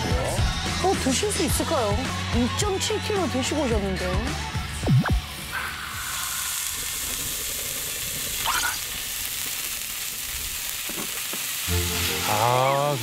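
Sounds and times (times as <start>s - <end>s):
beef sizzling on a grill: 5.1s - 13.0s.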